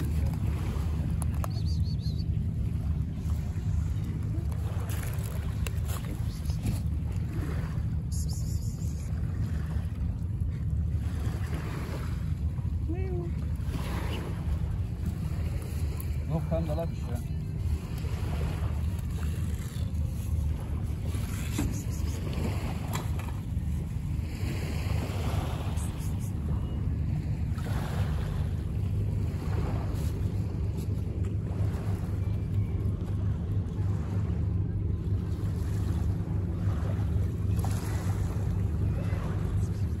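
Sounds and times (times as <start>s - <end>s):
sea: 0.0s - 40.0s
wind rumble on microphone: 0.0s - 40.0s.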